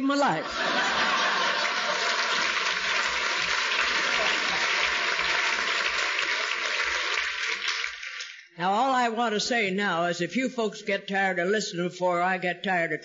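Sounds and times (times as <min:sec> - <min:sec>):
people applauding: 0:00.5 - 0:08.6.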